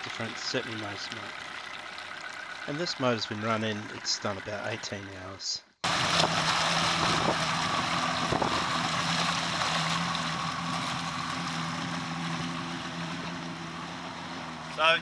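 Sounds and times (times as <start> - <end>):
churned water rushing: 0.0 - 5.2, 5.8 - 15.0
outboard engine running: 0.0 - 15.0
wind: 0.0 - 15.0.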